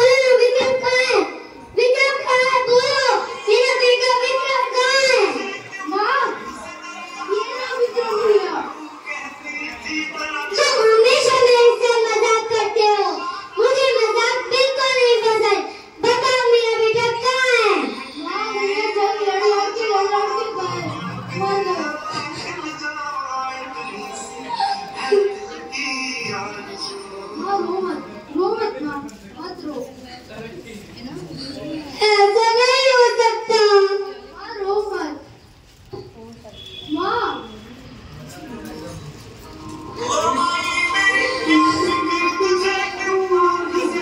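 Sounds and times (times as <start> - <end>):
child singing into microphone: 0.0 - 28.6, 40.0 - 44.0.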